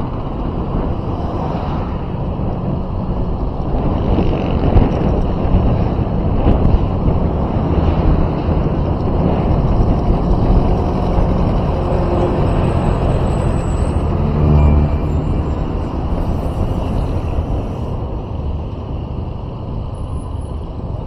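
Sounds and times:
vehicle engine and tyre rumble: 0:00.0 - 0:21.0
wind on microphone: 0:00.0 - 0:21.0.

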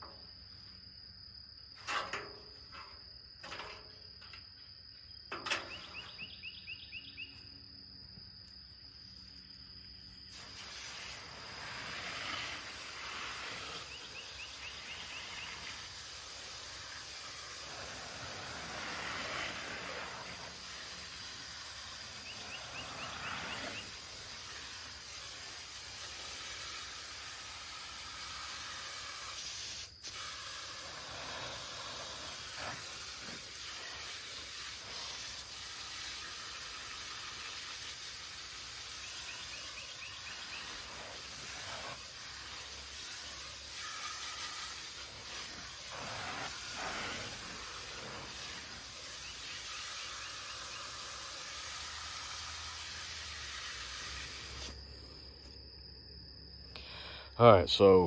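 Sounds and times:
hose nozzle spray hissing: 0:10.3 - 0:54.8.

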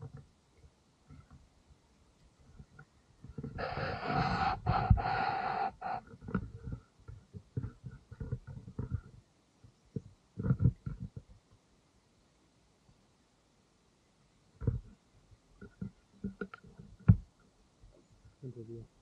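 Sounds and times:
loud breaths at microphone: 0:03.4 - 0:06.8.

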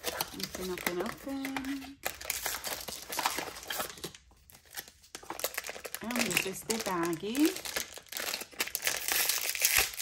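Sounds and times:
plastic wrapper crinkling: 0:00.0 - 0:10.0.

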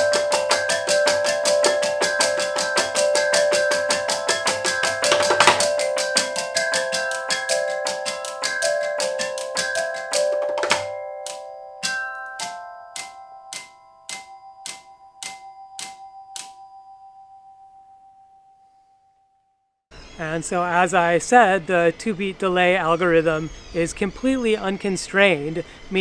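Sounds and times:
robotic solenoid tapping: 0:00.0 - 0:16.6
tuned tubes ringing: 0:00.0 - 0:19.0.

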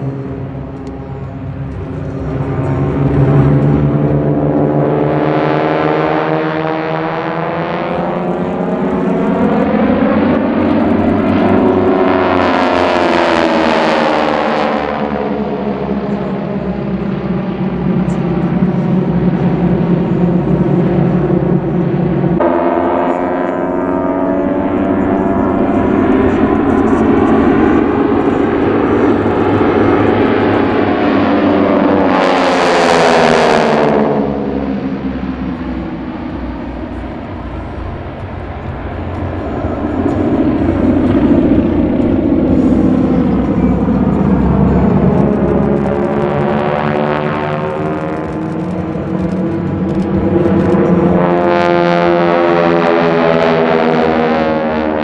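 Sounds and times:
propeller planes droning: 0:00.0 - 0:55.0.

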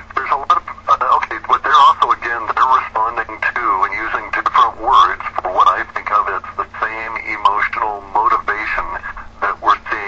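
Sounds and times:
person talking on radio: 0:00.0 - 0:10.0.

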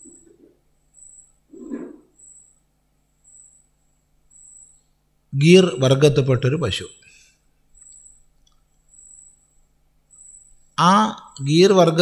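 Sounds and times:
faint high-pitched chirp: 0:04.3 - 0:05.0, 0:08.9 - 0:11.4.

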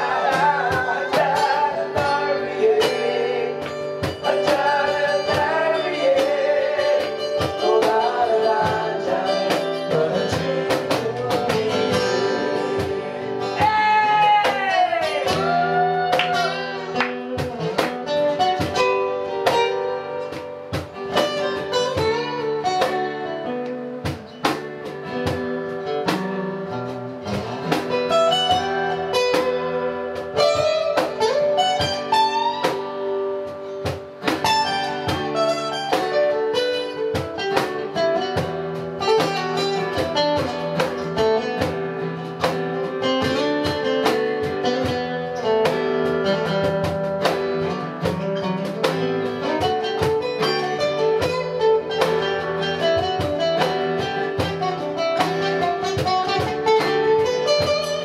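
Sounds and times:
acoustic guitar strummed chords: 0:00.0 - 0:58.0
picked guitar lead line: 0:00.0 - 0:58.0.

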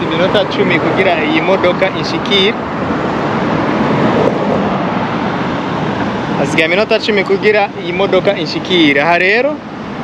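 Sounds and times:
road traffic rush: 0:00.0 - 0:10.0.

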